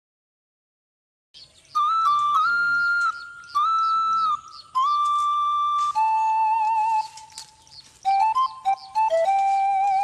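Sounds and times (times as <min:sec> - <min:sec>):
slow flute melody: 0:01.7 - 0:10.0.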